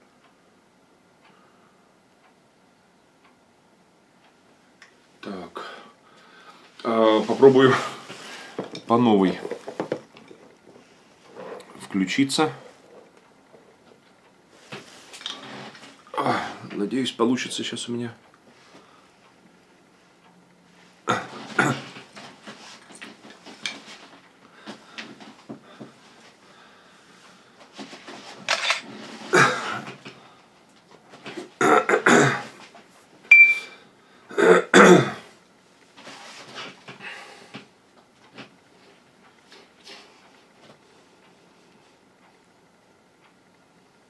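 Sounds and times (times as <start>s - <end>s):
handling noise rustles and knocks: 7.2s - 11.9s
short high beep: 33.3s - 33.8s.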